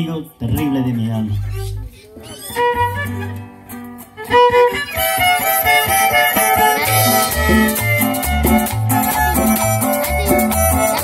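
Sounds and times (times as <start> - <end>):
bass notes: 0.0 - 2.0, 4.4 - 11.0
acoustic guitars strumming: 0.4 - 11.0
violin melody: 2.4 - 11.0.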